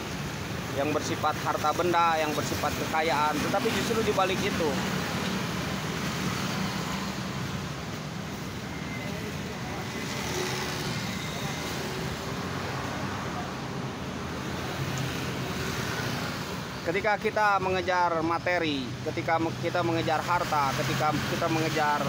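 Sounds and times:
motor traffic rumble: 0:00.0 - 0:22.0.

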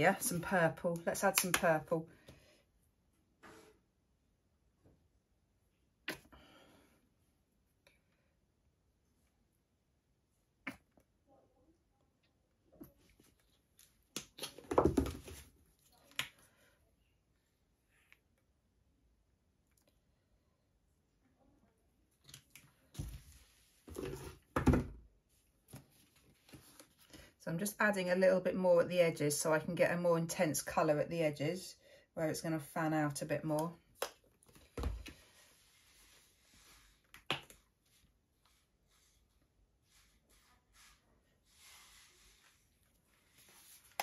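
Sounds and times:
plastic bottles knocking and rustling: 0:14.5 - 0:15.6.

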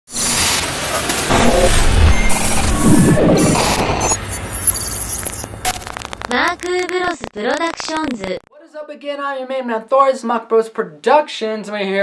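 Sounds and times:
loud noisy whoosh: 0:01.2 - 0:04.8
deep low rumble: 0:01.3 - 0:04.7.

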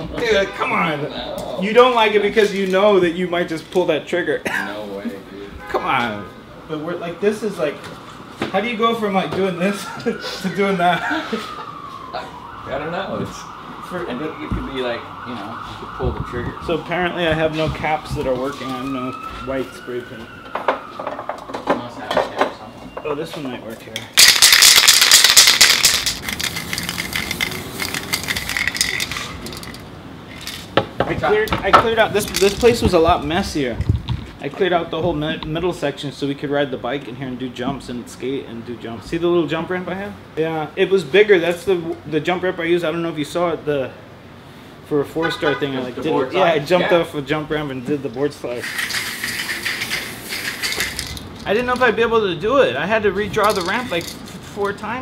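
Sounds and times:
spray can ball rattling: 0:24.2 - 0:30.8, 0:32.2 - 0:33.0, 0:48.6 - 0:52.0, 0:53.3 - 0:54.8.

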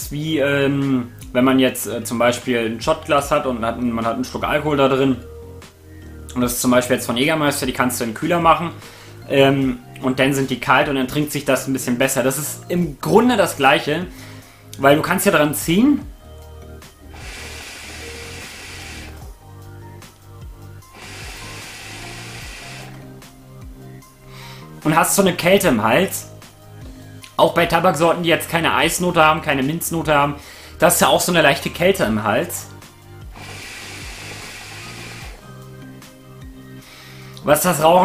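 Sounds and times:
background music: 0:00.0 - 0:38.0
air hissing through hookah hose: 0:17.1 - 0:19.3, 0:20.9 - 0:23.0, 0:33.2 - 0:35.5.

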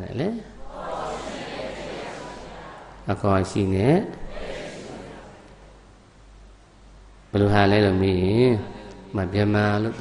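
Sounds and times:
steady background hiss: 0:00.0 - 0:10.0
man speaking: 0:03.0 - 0:04.4, 0:07.3 - 0:10.0.

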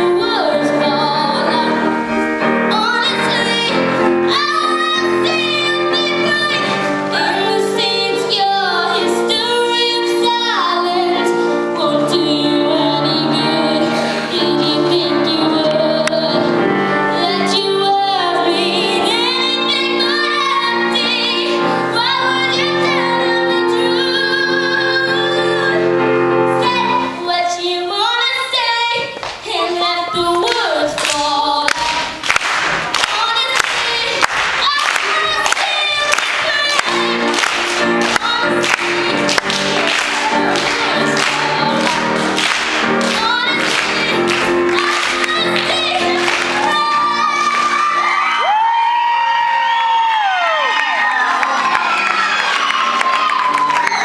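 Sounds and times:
girl singing into microphone: 0:00.0 - 0:49.6
piano accompaniment: 0:00.0 - 0:54.0
audience cheering and whooping: 0:39.3 - 0:42.5, 0:46.2 - 0:54.0.

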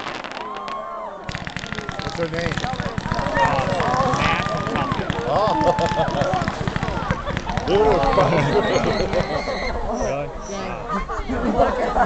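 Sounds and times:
fireworks crackling and popping: 0:00.0 - 0:09.5
onlookers' voices: 0:00.0 - 0:12.0.

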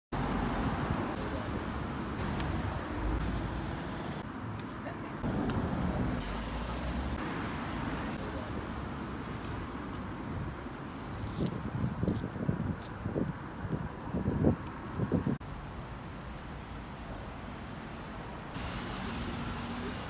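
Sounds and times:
traffic rumble: 0:00.1 - 0:20.0.

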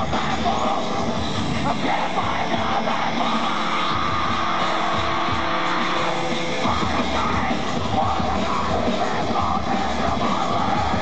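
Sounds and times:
drums: 0:00.0 - 0:11.0
electric guitar: 0:00.0 - 0:11.0.

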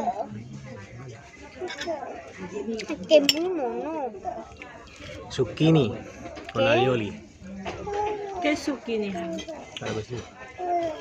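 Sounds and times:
cutlery clinking on dishes: 0:01.5 - 0:03.6, 0:07.6 - 0:11.0.

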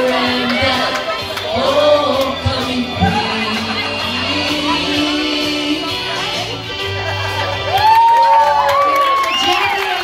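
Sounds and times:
small audience cheering: 0:07.7 - 0:10.0.

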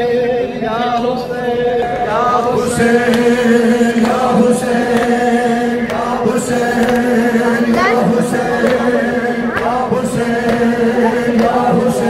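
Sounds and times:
crowd chanting held notes: 0:00.0 - 0:12.0
man chanting into microphone: 0:00.0 - 0:12.0
hands slapping chests: 0:03.0 - 0:03.4, 0:04.0 - 0:08.0, 0:08.6 - 0:09.8, 0:10.4 - 0:11.7.

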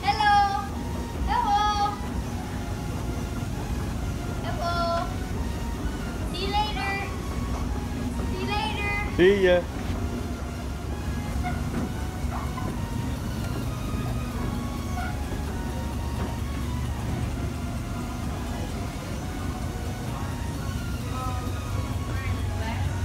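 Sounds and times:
distant voices: 0:00.0 - 0:23.0
escalator humming: 0:00.0 - 0:23.0
faint music: 0:00.0 - 0:23.0.

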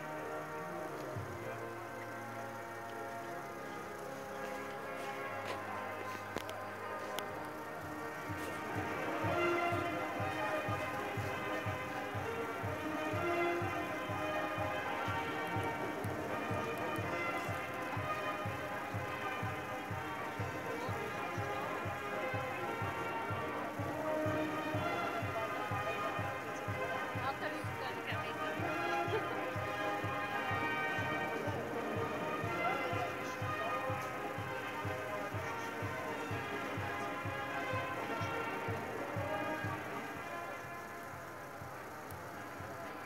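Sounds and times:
brass band playing a march: 0:00.0 - 0:43.0
steady bass drum beat: 0:07.4 - 0:40.2.

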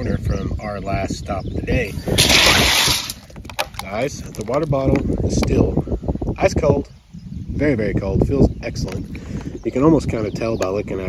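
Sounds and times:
ice cubes clattering and crunching: 0:02.1 - 0:04.9
light clicks and knocks of plastic bottle: 0:03.2 - 0:05.5.

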